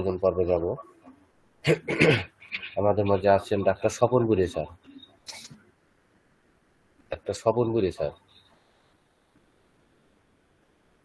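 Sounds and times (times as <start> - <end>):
person speaking over video call: 0.0 - 1.2, 1.8 - 5.6, 7.1 - 8.3.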